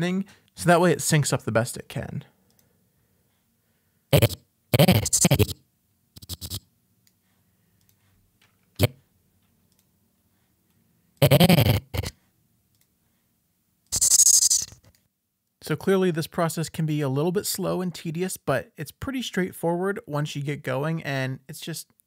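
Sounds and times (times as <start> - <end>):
stuttering voice fragments: 4.2 - 5.6, 6.2 - 6.6, 11.2 - 12.1, 13.9 - 14.9
drawn-out hiss: 14.0 - 14.8.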